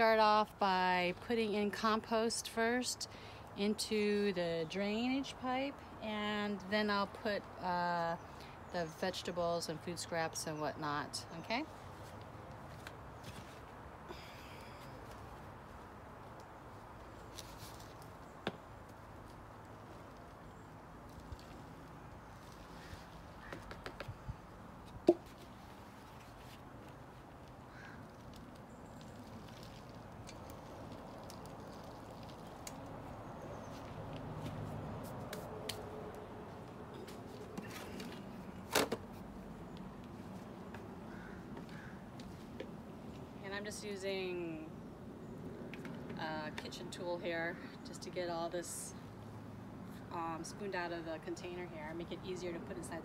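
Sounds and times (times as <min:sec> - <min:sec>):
faint outdoor background: 0:00.0 - 0:53.0.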